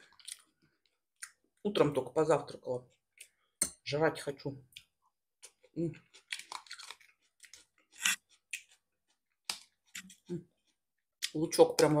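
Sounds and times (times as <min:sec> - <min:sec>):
person chewing food: 0:00.0 - 0:01.6, 0:02.9 - 0:03.6, 0:04.7 - 0:11.4.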